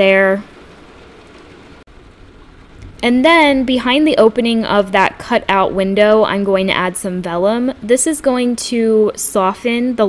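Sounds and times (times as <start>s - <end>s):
steady rain: 0.5s - 5.8s.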